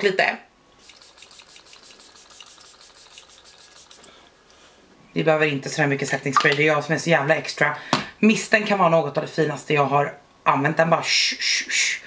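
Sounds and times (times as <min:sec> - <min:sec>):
spray bottle hissing spritzes: 0:00.8 - 0:04.2.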